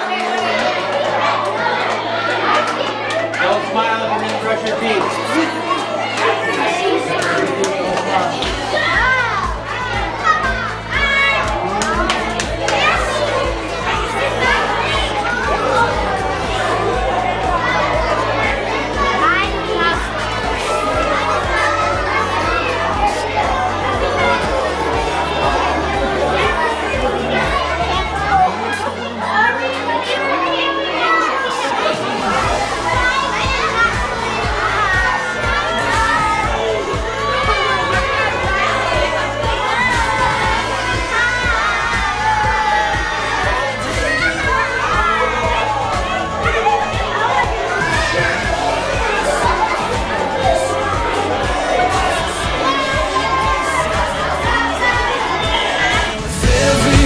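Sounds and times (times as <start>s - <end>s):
children cheering and shouting: 0.0s - 57.0s
pop song: 32.0s - 57.0s
drum beat: 32.8s - 57.0s
pop song with drum beat: 55.7s - 57.0s.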